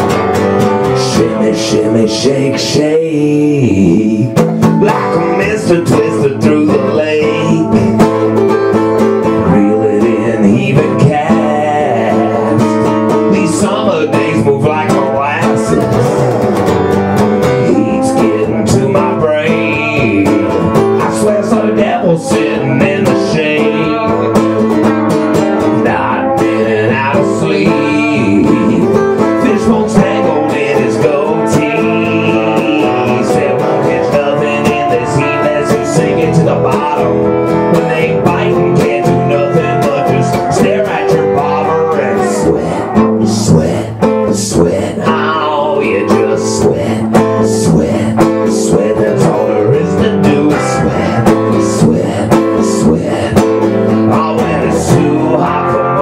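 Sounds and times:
electric guitar lead lines: 0:00.0 - 0:56.0
strummed acoustic guitar: 0:00.0 - 0:56.0.

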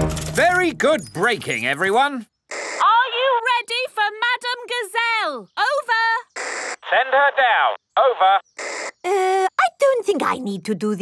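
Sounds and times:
radio static hiss: 0:06.4 - 0:09.0
cartoon voice over walkie-talkie: 0:06.8 - 0:08.5.

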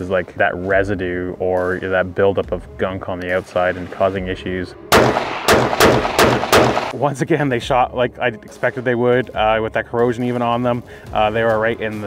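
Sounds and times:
rifle shots echoing: 0:04.9 - 0:07.0.

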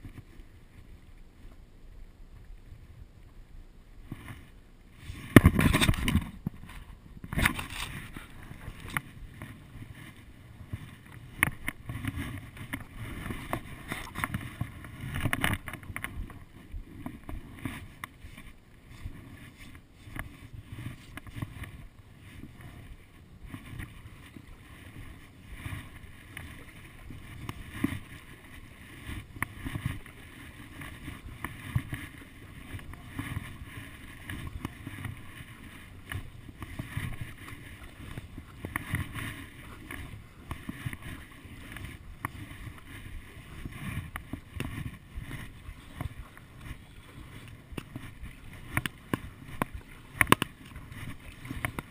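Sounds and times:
paddle strokes in water: 0:00.0 - 0:51.9
water splashing and lapping: 0:04.0 - 0:51.9
wind on microphone: 0:04.0 - 0:51.9.

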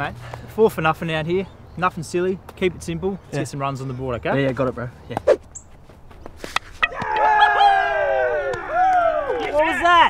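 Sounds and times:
men shouting in celebration: 0:06.9 - 0:10.0.

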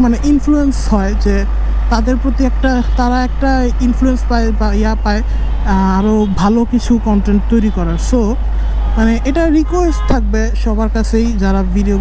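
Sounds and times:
man speaking: 0:00.0 - 0:08.4, 0:09.0 - 0:12.0.

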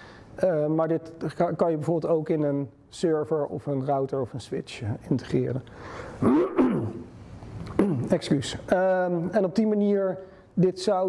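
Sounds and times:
man coughing: 0:06.2 - 0:07.1.

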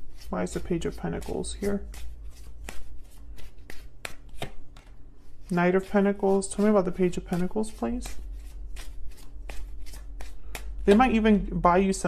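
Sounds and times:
cards being shuffled: 0:00.0 - 0:11.3.

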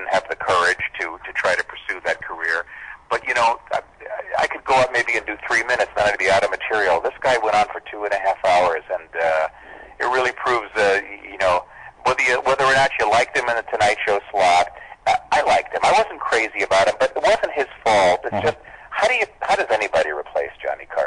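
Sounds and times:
men talking: 0:00.0 - 0:21.0.

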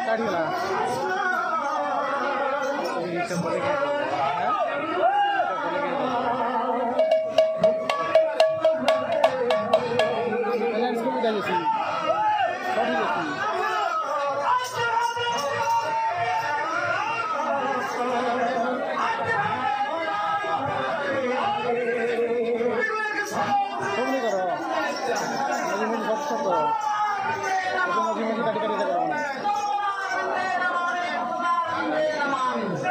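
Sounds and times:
voices and chatter: 0:00.0 - 0:32.9
hand drum quick rhythm: 0:07.0 - 0:10.5.

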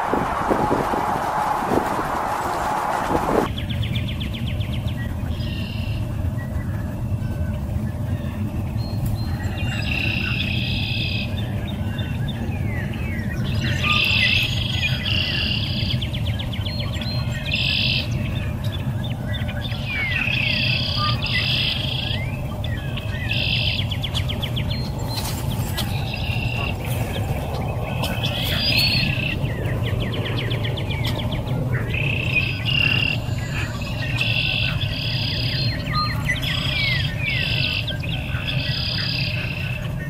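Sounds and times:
low background rumble: 0:00.0 - 0:40.0
songbirds chirping and trilling: 0:00.0 - 0:40.0.

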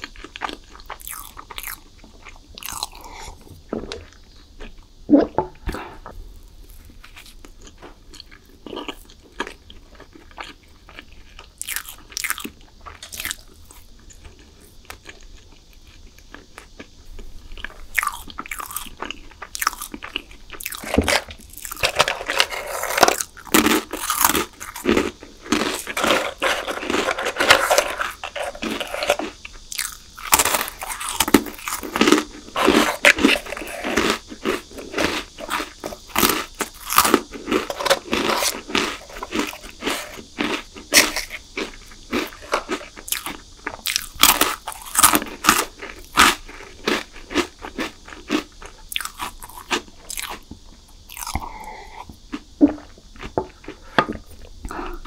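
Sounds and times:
crunching and chewing snacks: 0:00.0 - 0:55.0.

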